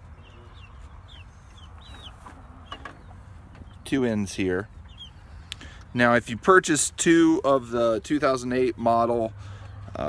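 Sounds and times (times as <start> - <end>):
chickens chirping: 0.0 - 10.0.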